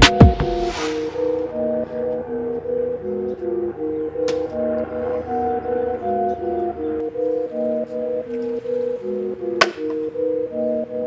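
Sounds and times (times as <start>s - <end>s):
background music of held chords: 0.0s - 11.0s.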